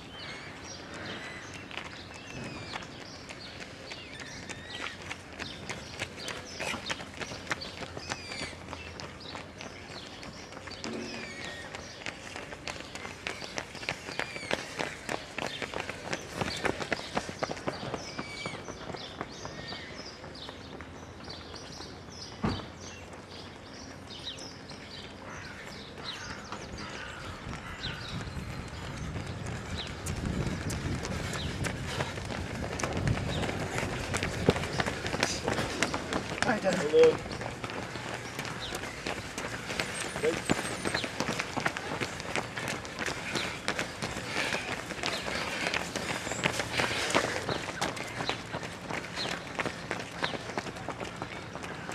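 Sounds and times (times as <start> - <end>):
birds chirping: 0.0 - 51.9
running footsteps on pavement: 0.0 - 51.9.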